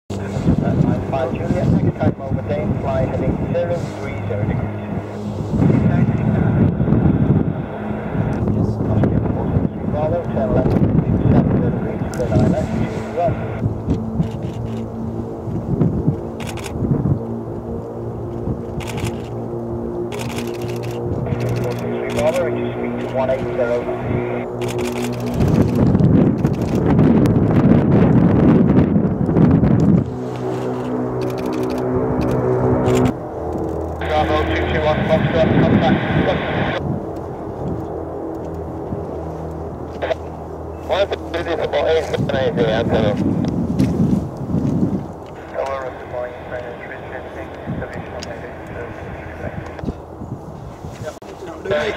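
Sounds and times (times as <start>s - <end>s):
radio voice: 0.1s - 13.6s, 21.2s - 24.5s, 34.0s - 36.8s, 39.9s - 43.3s, 45.4s - 50.0s, 51.0s - 51.9s
turboprop aircraft engines roaring: 0.1s - 51.9s
people talking: 0.2s - 5.0s, 5.6s - 6.6s, 8.4s - 13.6s, 21.3s - 24.4s, 34.0s - 36.8s, 40.9s - 43.2s, 45.4s - 49.9s, 51.0s - 51.9s.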